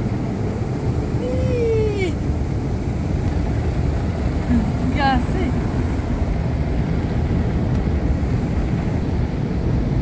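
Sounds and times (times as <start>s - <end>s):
water spray on car: 0.0s - 10.0s.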